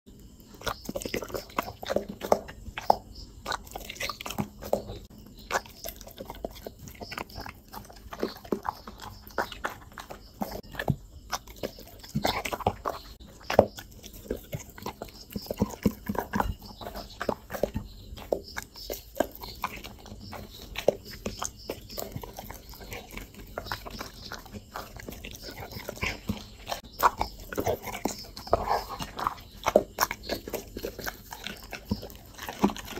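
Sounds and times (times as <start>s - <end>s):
dog chewing food: 0.1s - 32.9s.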